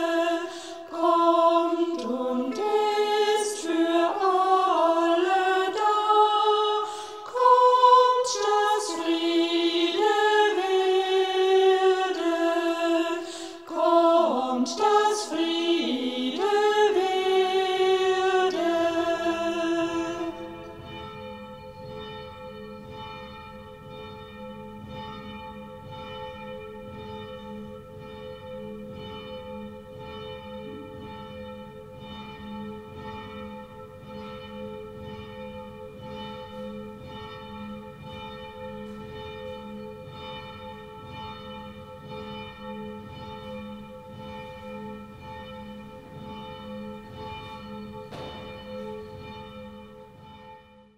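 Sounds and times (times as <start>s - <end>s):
church bells ringing: 0.0s - 50.9s.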